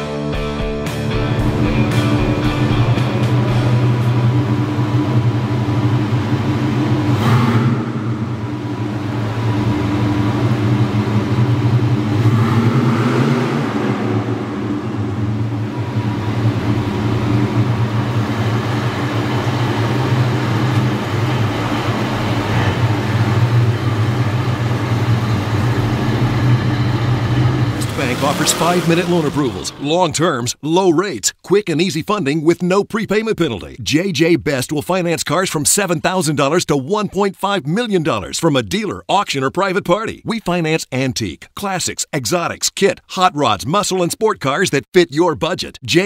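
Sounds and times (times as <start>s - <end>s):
car engine idling: 1.0s - 30.6s.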